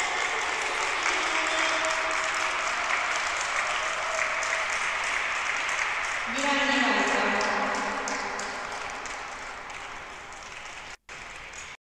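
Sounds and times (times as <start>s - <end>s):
audience applause: 0.0s - 11.8s.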